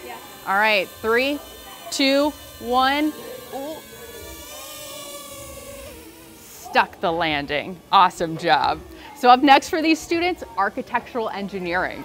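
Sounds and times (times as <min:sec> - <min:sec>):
drone propellers whining: 0:00.0 - 0:11.2.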